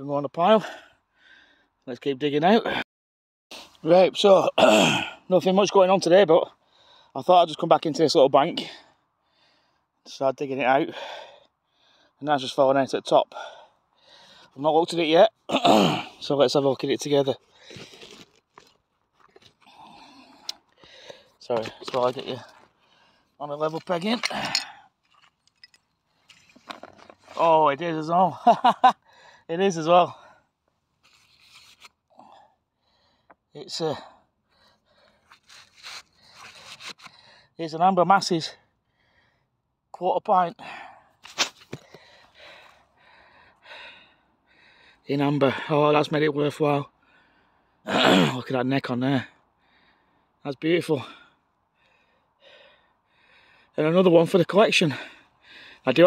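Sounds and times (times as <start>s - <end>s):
digging in loose soil: 16.8s - 22.8s, 23.4s - 25.2s, 26.2s - 28.0s, 41.2s - 42.2s.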